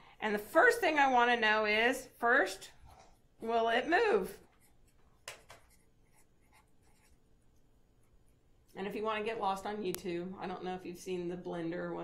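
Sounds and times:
marker strokes on paper: 4.4s - 7.2s.

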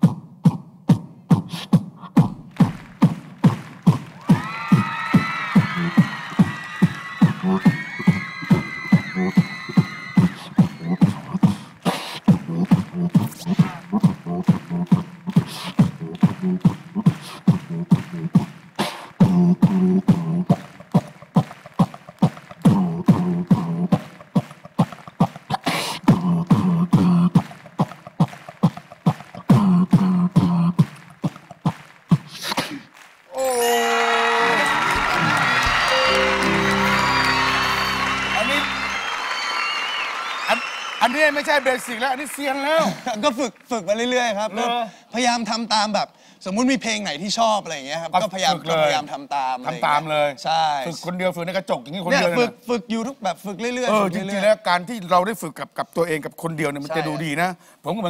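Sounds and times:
beatboxing: 0.0s - 32.9s
high vocal melody: 33.3s - 39.0s.

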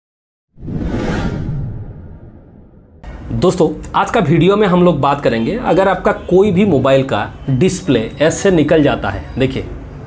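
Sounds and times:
deep rumble: 0.6s - 3.0s
whoosh sound effect: 0.6s - 3.0s.

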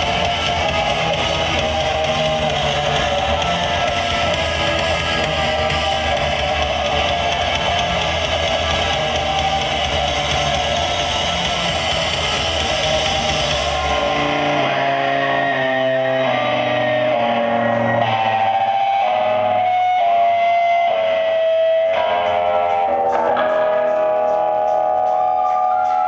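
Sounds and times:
bass guitar: 0.0s - 26.0s
drums: 0.0s - 26.0s
electric guitar: 0.0s - 26.0s.

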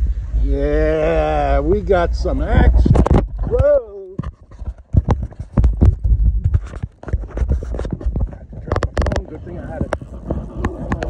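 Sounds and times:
low rumble: 0.0s - 3.9s.

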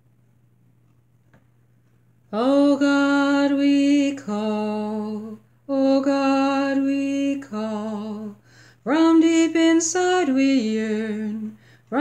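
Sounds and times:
woman singing slow chant: 2.3s - 12.0s.

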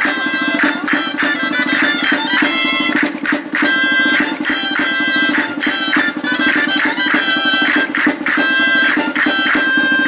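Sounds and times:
shawm playing folk dance tune: 0.0s - 10.0s.

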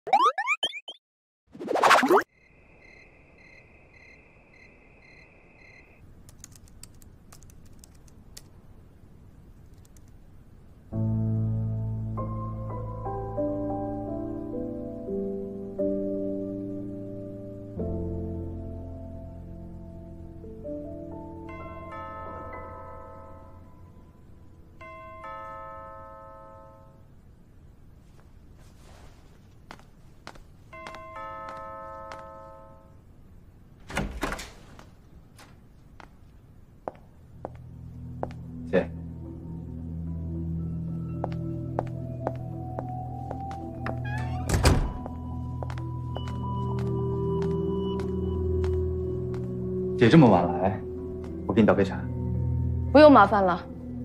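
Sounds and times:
cartoon boing sound effects: 0.1s - 1.0s
high insect trill: 2.3s - 6.0s
laptop keys typing: 6.2s - 8.5s, 9.7s - 10.2s.

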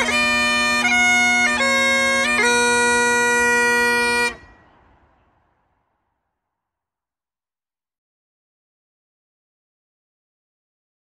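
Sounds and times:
bagpipe note over drones: 0.0s - 4.9s.

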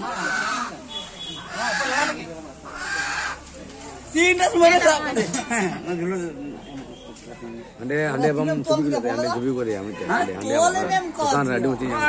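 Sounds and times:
harsh animal calls: 0.0s - 3.5s.

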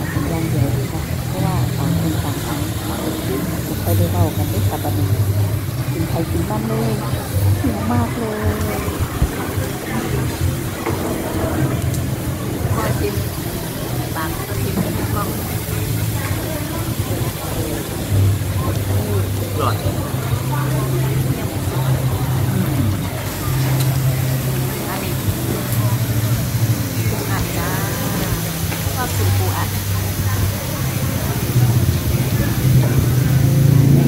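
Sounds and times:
diners chattering: 0.0s - 34.0s.

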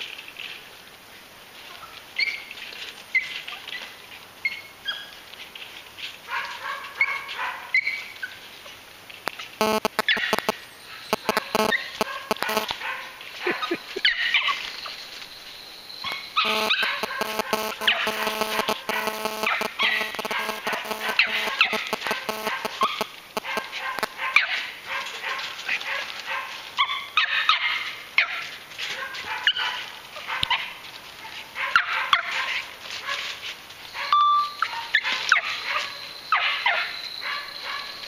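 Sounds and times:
young dog barking and yipping: 1.7s - 5.2s, 6.0s - 8.8s, 9.4s - 14.7s, 16.0s - 38.0s.

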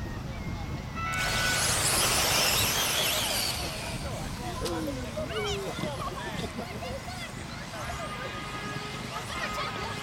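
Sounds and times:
electric motor whine and hiss: 1.1s - 5.0s.

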